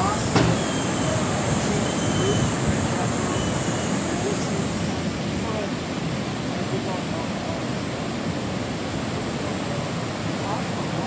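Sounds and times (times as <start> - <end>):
distant voices: 0.0 - 11.0
ocean surf breaking: 0.0 - 11.0.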